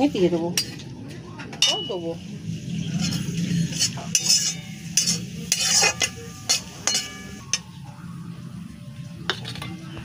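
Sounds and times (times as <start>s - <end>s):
oil sizzling: 1.6s - 7.8s
metal spatula scraping pan: 2.6s - 7.7s.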